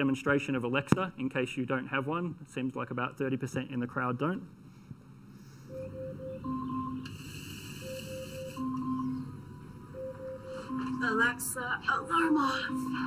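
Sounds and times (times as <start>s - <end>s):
repeating alarm chime melody: 5.7s - 7.1s, 7.8s - 13.0s.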